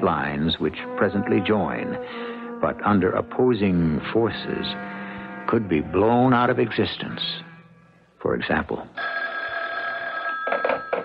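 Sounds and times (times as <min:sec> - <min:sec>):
telephone ringing: 0:09.0 - 0:11.0.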